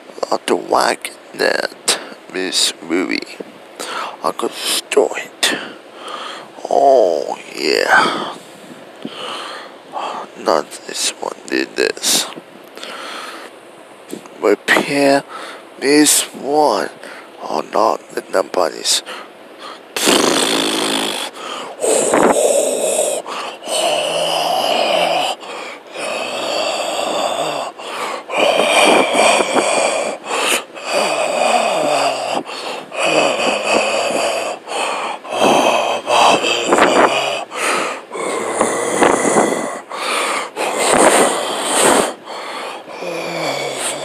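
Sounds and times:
person making raspy breathy noises: 0:03.8 - 0:13.5, 0:19.0 - 0:44.0.

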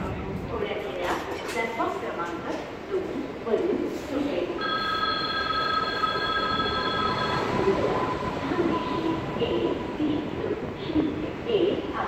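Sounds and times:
train running noise: 0:00.0 - 0:12.0.

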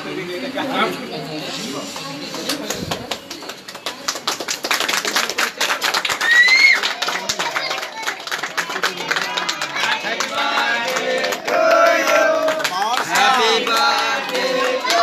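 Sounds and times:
many voices: 0:00.0 - 0:15.0
children clapping hands: 0:02.3 - 0:15.0.

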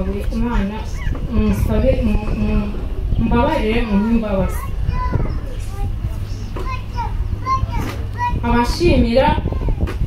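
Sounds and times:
woman speaking over loudspeaker: 0:00.0 - 0:04.6, 0:08.4 - 0:09.5
steady low rumble: 0:00.0 - 0:10.0.

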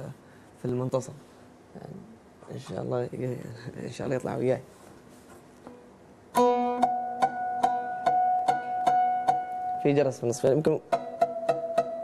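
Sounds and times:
oud plucked with a plectrum: 0:05.7 - 0:10.0, 0:10.8 - 0:12.0.

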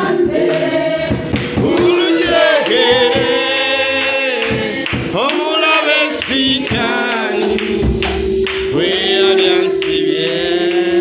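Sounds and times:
voices singing worship song: 0:00.0 - 0:11.0.

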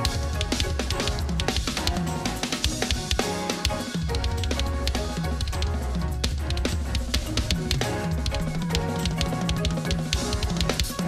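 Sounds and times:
drum kit played fast: 0:00.0 - 0:11.0
recorded backing music: 0:00.0 - 0:11.0.

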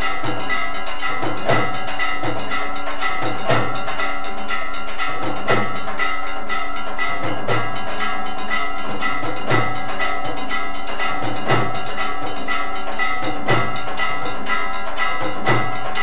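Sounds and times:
bells ringing: 0:00.0 - 0:16.0
drum beat: 0:00.0 - 0:16.0.

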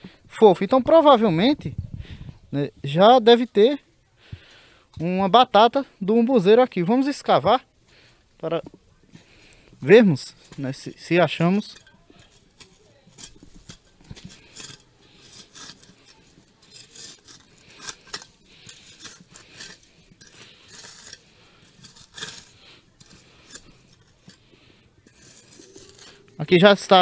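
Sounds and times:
trowel scraping dry earth: 0:09.2 - 0:27.0.

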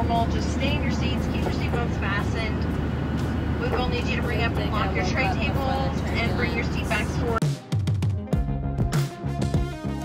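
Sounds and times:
airliner cabin drone: 0:00.0 - 0:07.4.

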